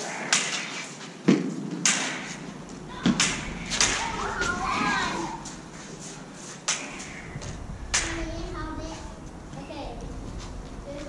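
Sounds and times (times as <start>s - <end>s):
lightsaber blades cracking together: 3.0s - 4.6s, 6.6s - 7.2s, 7.9s - 8.2s.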